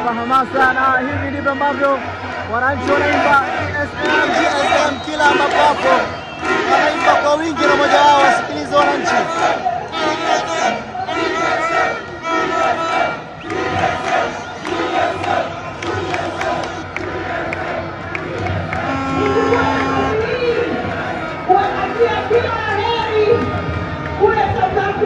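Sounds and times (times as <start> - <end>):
crowd chanting and cheering: 0.0 - 25.0.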